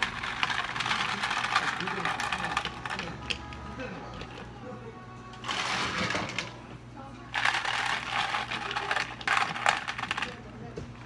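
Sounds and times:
ice cubes clattering in plastic cups: 0.0s - 3.6s, 5.4s - 6.5s, 7.4s - 10.4s
background music: 1.4s - 9.4s.

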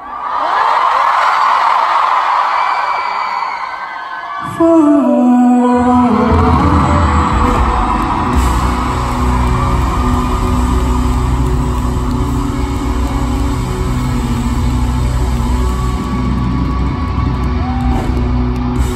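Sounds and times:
live band music over sound system: 4.6s - 18.9s.

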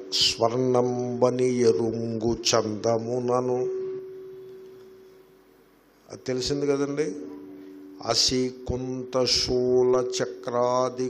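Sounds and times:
faint steady pure tone: 0.0s - 11.0s.

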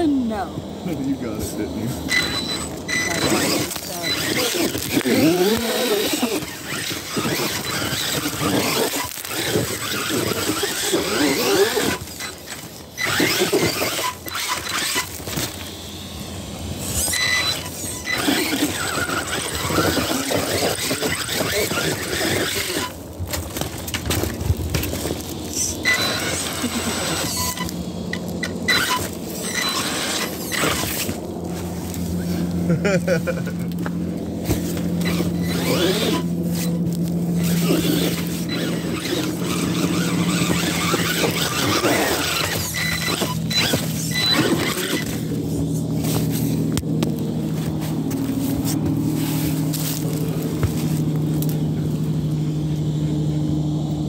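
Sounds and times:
electric motor whining: 0.0s - 54.0s
tyres scrabbling over rock: 1.8s - 15.9s, 16.8s - 51.8s.

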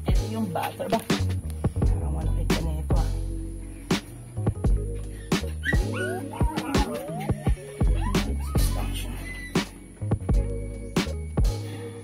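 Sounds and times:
background music with steady beat: 0.0s - 12.0s
puppy whimpering and yipping: 5.2s - 9.8s.

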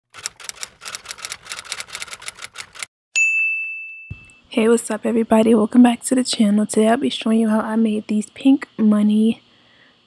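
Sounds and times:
typewriter bell ding: 3.2s - 4.4s.

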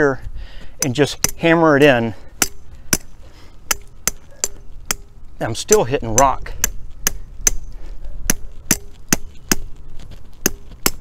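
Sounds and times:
hammer striking metal stake: 0.8s - 1.6s, 2.4s - 9.7s, 10.4s - 11.0s.

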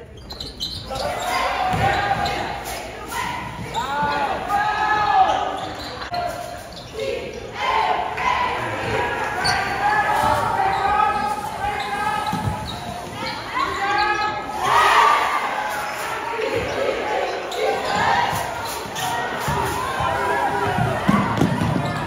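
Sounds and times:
people calling out: 0.8s - 22.0s
basketball bouncing on wooden court: 1.7s - 2.3s, 12.3s - 12.8s, 20.7s - 22.0s.

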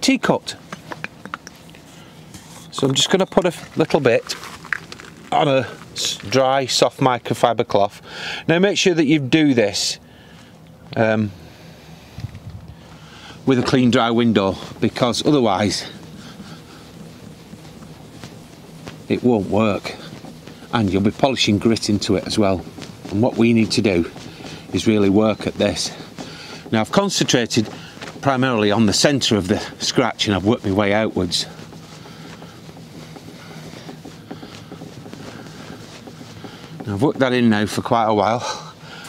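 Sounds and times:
cloth rubbing on window: 0.0s - 7.9s, 11.3s - 39.0s.

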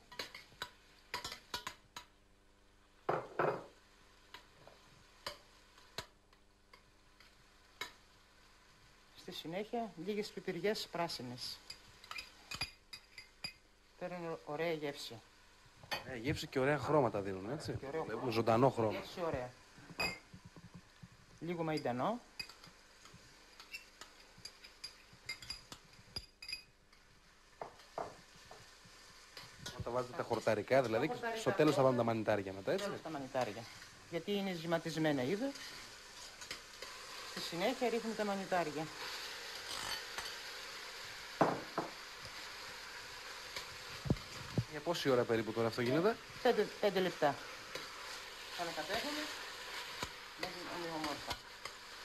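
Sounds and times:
metal spoon stirring in pot: 0.1s - 2.2s, 11.6s - 13.6s, 21.8s - 27.1s, 35.4s - 38.2s
metal spoon clinking on pot: 20.0s - 20.3s, 23.6s - 26.7s.

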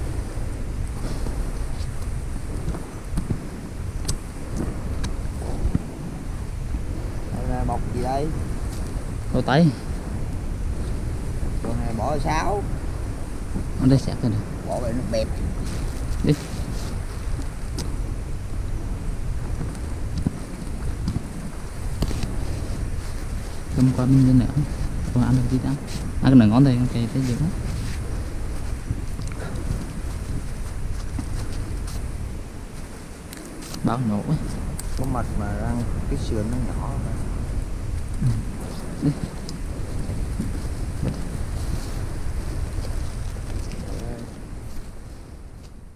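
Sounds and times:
wind buffeting microphone: 0.0s - 45.9s.

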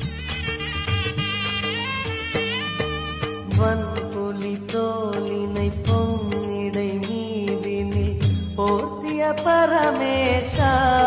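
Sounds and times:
percussion beats: 0.0s - 11.0s
person singing devotional song: 2.8s - 11.0s.

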